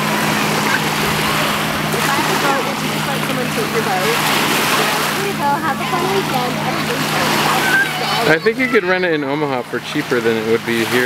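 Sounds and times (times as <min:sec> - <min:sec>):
motorboat engine drone: 0:00.0 - 0:11.0
waves and water wash: 0:00.0 - 0:11.0.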